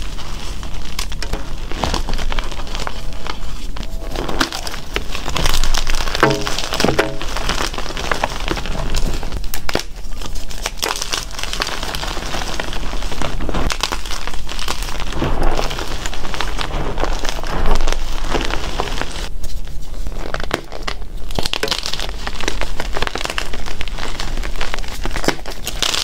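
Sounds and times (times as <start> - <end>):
chalk blocks crunching: 0.0 - 26.0.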